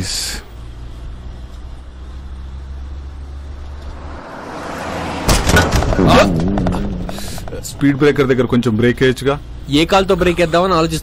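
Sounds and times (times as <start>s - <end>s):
car engine humming: 0.0s - 11.0s
car driving by: 1.9s - 9.0s.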